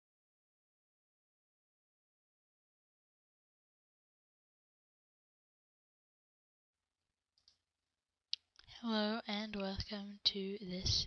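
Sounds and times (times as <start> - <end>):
person speaking: 8.6 - 11.0.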